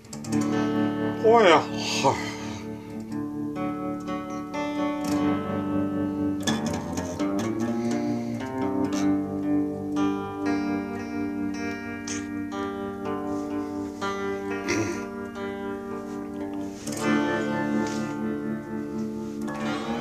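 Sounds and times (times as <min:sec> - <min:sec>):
clean electric guitar picking: 0:00.0 - 0:20.0.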